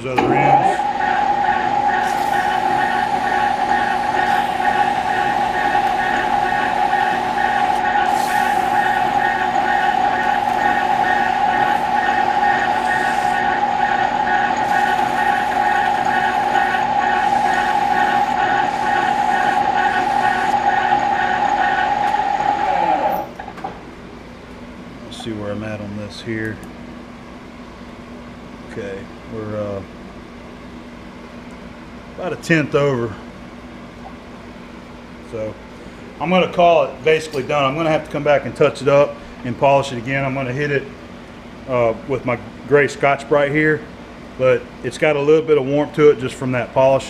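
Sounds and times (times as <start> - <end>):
lathe running with gear whine: 0.0 - 23.5
lathe spinning down: 0.2 - 23.4
fast pulsing: 0.5 - 23.2.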